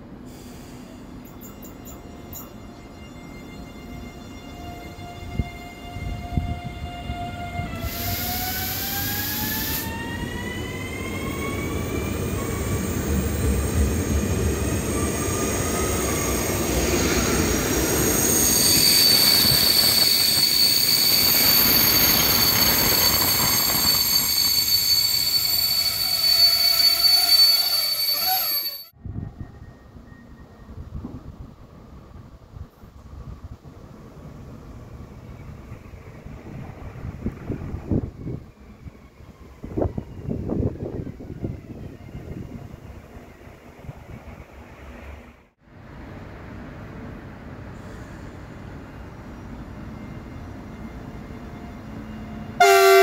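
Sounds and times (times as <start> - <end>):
train rumbling by: 0.0 - 53.0
wheel squeal: 14.6 - 28.9.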